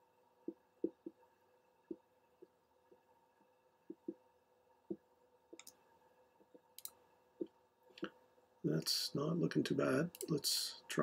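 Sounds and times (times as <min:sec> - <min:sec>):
faint electrical hum: 0:00.0 - 0:11.0
computer mouse clicking: 0:04.9 - 0:05.8, 0:06.5 - 0:08.1, 0:10.1 - 0:10.4.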